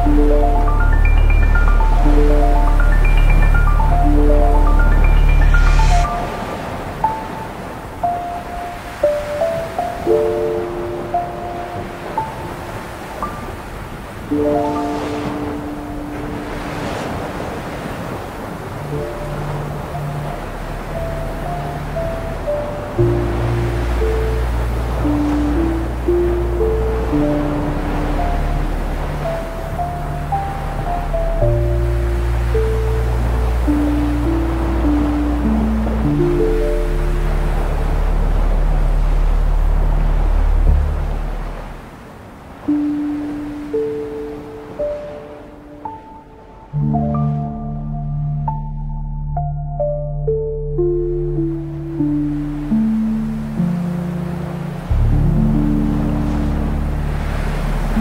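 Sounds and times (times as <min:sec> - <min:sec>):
ocean surf: 0:00.0 - 0:49.2, 0:50.4 - 0:58.0
slow ambient music: 0:00.0 - 0:58.0.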